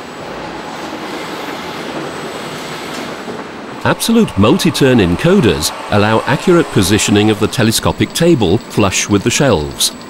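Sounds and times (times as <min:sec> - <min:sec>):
warehouse machinery running: 0:00.0 - 0:10.0.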